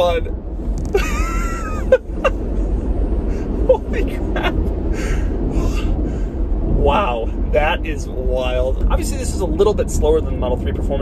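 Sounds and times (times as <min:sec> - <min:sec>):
road and tyre rumble: 0:00.0 - 0:11.0
man laughing: 0:00.9 - 0:06.0.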